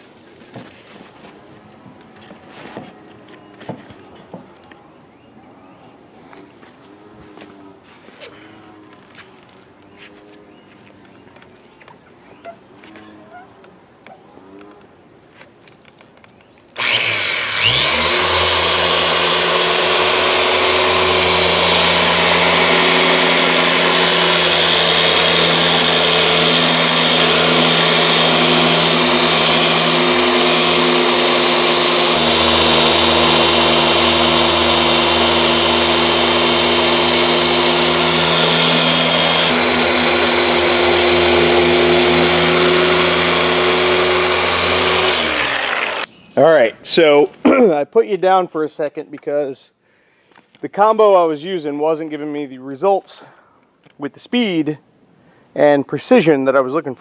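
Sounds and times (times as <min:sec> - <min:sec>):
polisher motor rising whine: 0:16.8 - 0:46.1
polisher running: 0:16.8 - 0:46.1.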